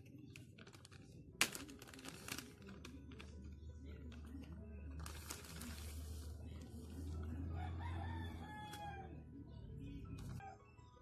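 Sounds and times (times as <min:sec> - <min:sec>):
plastic bag rustling: 0:00.3 - 0:07.0
rooster crowing: 0:07.5 - 0:09.2.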